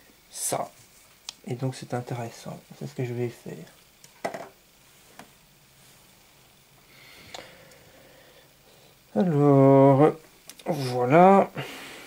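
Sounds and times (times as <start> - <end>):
quiet handling sounds: 0.6 - 7.8.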